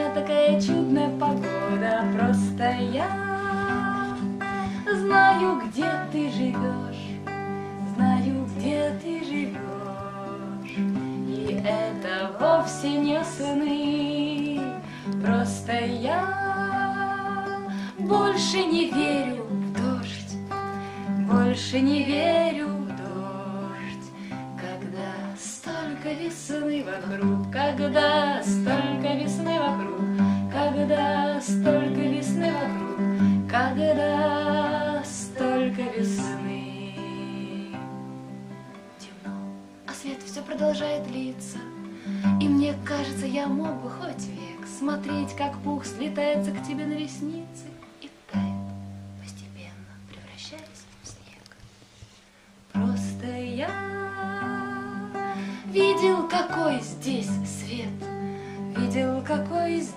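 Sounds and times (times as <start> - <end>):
fingerpicked classical guitar: 0.0 - 59.9
soft breathy sounds: 4.1 - 4.9, 14.8 - 15.2, 17.6 - 18.1, 20.6 - 21.2, 24.0 - 24.6, 41.8 - 42.4, 48.0 - 52.7, 55.2 - 55.8, 58.1 - 58.8.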